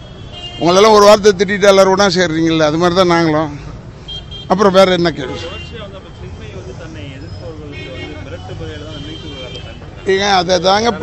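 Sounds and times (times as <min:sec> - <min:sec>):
faint voices talking: 0:00.6 - 0:11.0.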